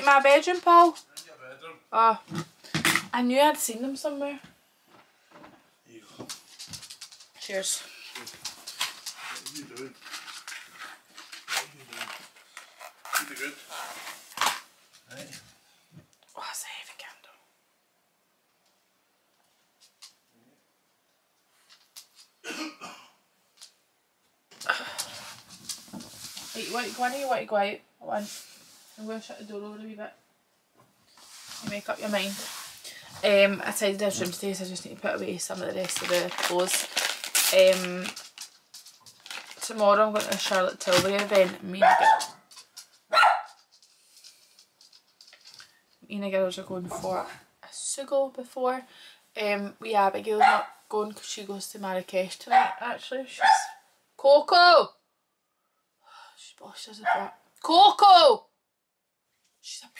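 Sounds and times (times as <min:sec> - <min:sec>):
dog bark: 0:41.8 - 0:42.4, 0:43.1 - 0:43.6, 0:50.4 - 0:50.8, 0:52.5 - 0:52.8, 0:53.4 - 0:53.8, 0:57.0 - 0:57.4.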